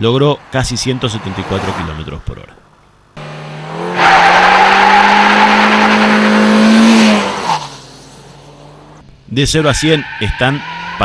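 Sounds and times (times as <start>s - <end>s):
car passing at high speed: 0.0s - 9.0s.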